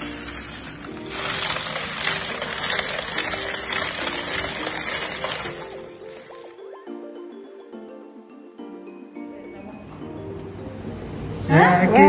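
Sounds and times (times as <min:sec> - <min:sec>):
ice and water sloshing: 0:00.0 - 0:06.6
background music: 0:00.0 - 0:12.0.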